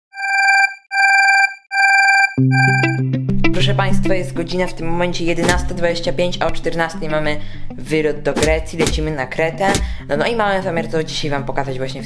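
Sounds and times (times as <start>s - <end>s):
warbling electronic ringing tone: 0.1s - 3.0s.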